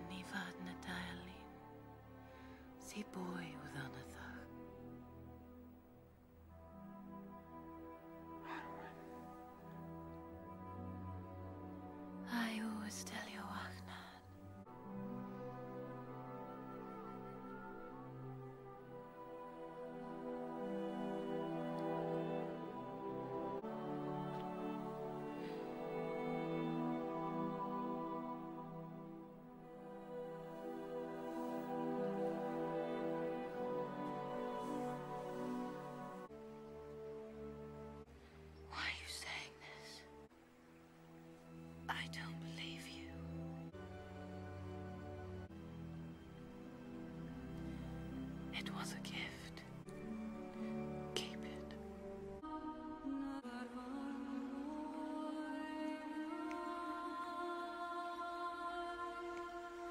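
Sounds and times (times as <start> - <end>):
quiet background music: 0.0 - 59.9
soft orchestral score: 0.0 - 59.9
person whispering: 8.4 - 9.4, 12.3 - 14.3, 38.7 - 40.1, 41.9 - 43.2, 48.5 - 49.7, 51.1 - 51.8.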